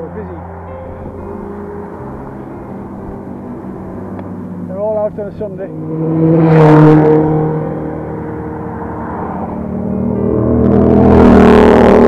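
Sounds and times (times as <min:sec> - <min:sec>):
vehicle engines driving fast: 0:00.0 - 0:12.0.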